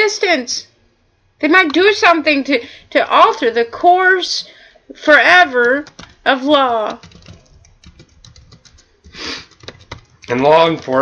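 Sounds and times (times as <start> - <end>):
computer keyboard typing: 5.5 - 6.2, 6.8 - 11.0.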